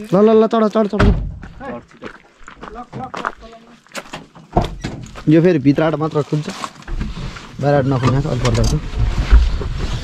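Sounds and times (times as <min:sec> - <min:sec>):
men talking and calling out: 0:00.0 - 0:06.7.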